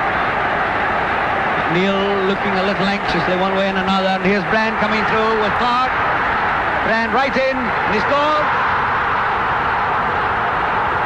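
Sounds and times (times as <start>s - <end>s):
football crowd cheering: 0.0s - 11.0s.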